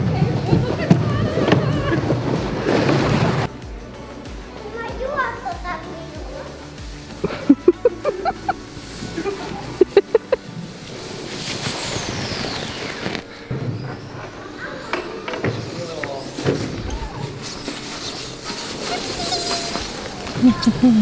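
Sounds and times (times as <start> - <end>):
sled scraping on snow: 0.0 - 3.5, 6.0 - 21.0.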